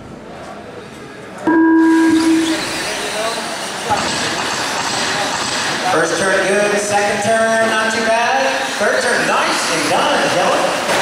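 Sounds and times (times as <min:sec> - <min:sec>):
loud electronic beep: 0:01.5 - 0:03.0.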